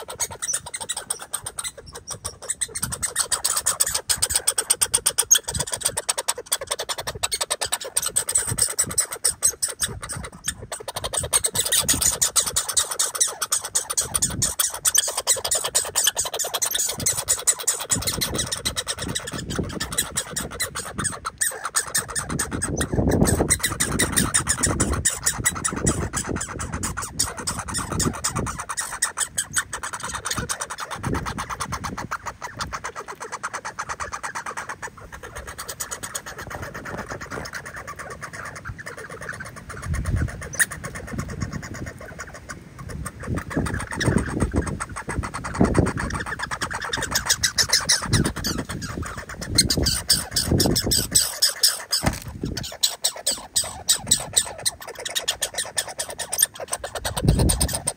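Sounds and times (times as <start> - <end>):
squirrel clicking and crackling: 0.0 - 57.9.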